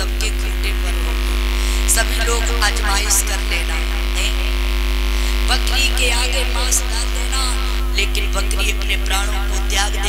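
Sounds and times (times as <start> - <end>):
electrical mains hum: 0.0 - 10.0
faint higher steady tones: 0.0 - 10.0.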